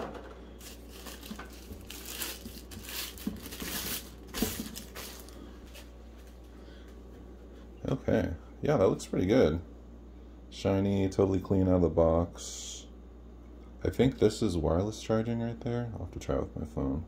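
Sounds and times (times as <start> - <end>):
plastic wrap crinkling: 0.6 - 6.4.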